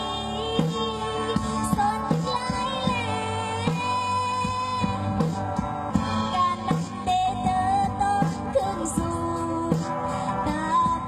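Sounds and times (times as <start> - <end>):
backing music with drum beat: 0.0 - 11.0
woman singing pop song: 0.0 - 11.0.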